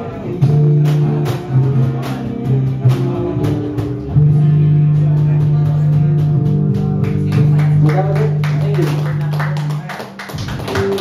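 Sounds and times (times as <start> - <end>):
people clapping: 6.8 - 11.0.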